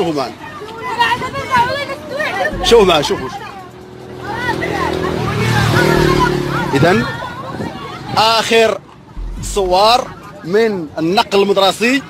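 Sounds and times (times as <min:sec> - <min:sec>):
people's voices: 0:00.3 - 0:11.6
vehicle engine running: 0:02.5 - 0:04.5, 0:05.4 - 0:07.2, 0:09.2 - 0:10.3.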